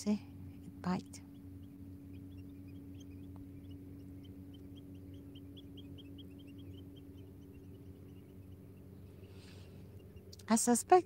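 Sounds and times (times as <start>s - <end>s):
faint bird chirping: 0.0s - 11.0s
steady low hum: 0.0s - 11.0s.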